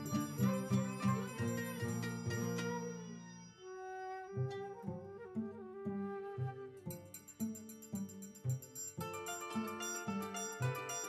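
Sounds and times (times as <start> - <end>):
string band playing: 0.0 - 3.5, 4.4 - 11.0
held melody note: 0.0 - 5.0.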